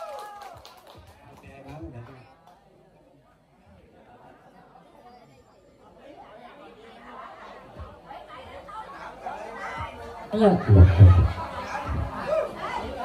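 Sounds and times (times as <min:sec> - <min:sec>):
chatter of several voices: 0:02.2 - 0:13.0.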